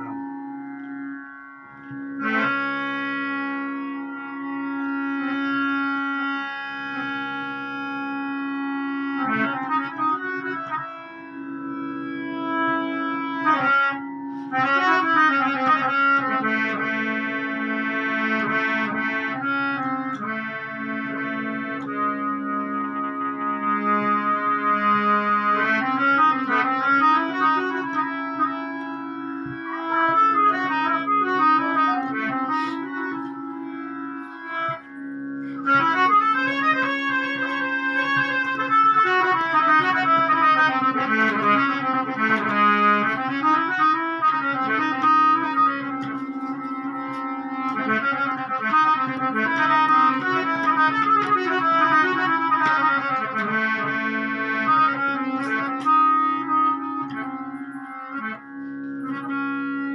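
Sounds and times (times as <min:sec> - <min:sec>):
harmonium playing: 0:00.0 - 0:59.9.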